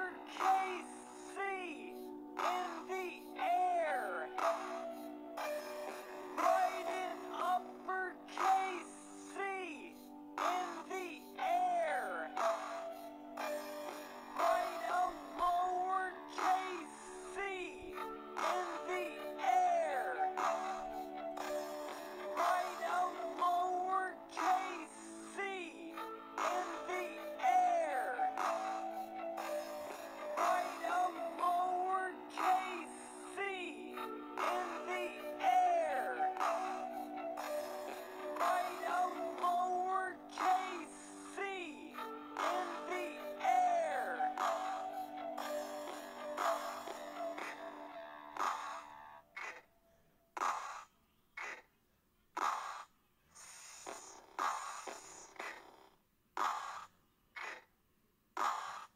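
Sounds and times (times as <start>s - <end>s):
slowed-down voice saying k: 0.0s - 4.4s, 6.5s - 12.7s, 22.4s - 28.4s, 38.4s - 44.6s
synthetic sung voice: 0.0s - 13.5s, 14.3s - 49.6s, 53.4s - 55.8s.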